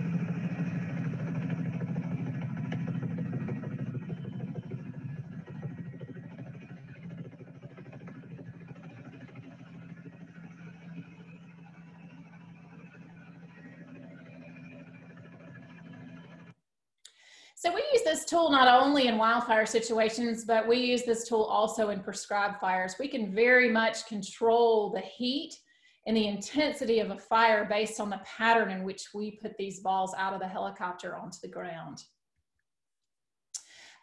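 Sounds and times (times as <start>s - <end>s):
helicopter engine and rotor: 0.0s - 16.6s.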